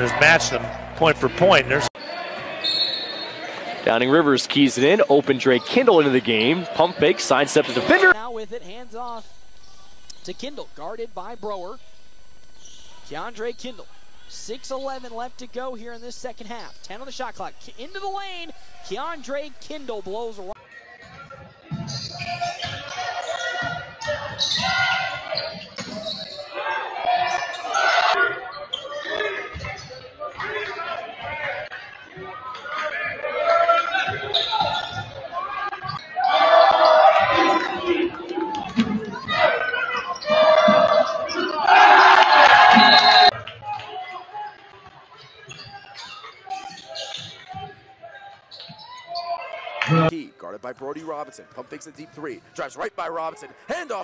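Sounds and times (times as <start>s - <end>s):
crowd shouting and cheering: 0.0s - 4.0s, 22.2s - 50.2s
faint voices: 7.8s - 20.6s.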